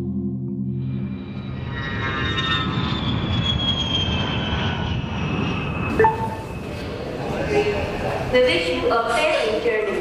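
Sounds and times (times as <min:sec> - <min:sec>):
jet engines rushing and whining: 0:00.7 - 0:10.0.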